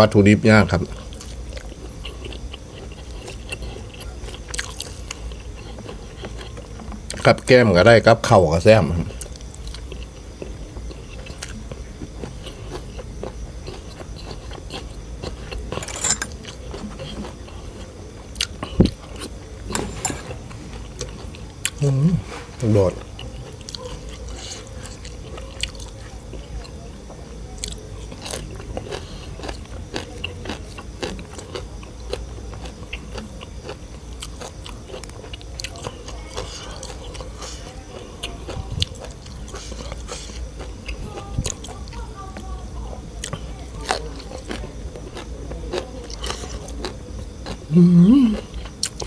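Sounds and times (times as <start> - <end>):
person chewing crunchy food: 0.7 - 7.5, 9.0 - 42.5, 43.1 - 49.0.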